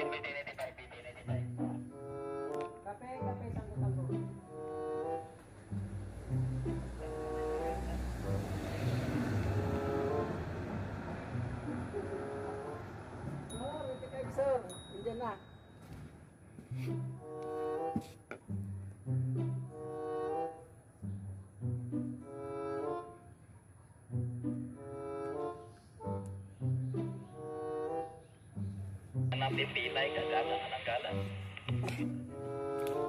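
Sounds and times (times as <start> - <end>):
bowed strings playing: 1.5 - 12.5.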